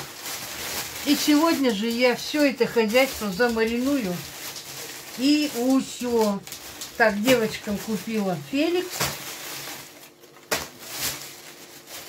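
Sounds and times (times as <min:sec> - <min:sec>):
plastic crinkle: 0:00.0 - 0:12.0
plastic pouches rustling: 0:00.0 - 0:12.0.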